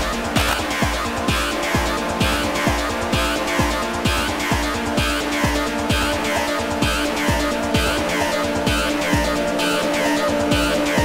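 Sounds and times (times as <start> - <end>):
kick drum: 0.0 - 9.5
droning synth chords: 0.0 - 11.0.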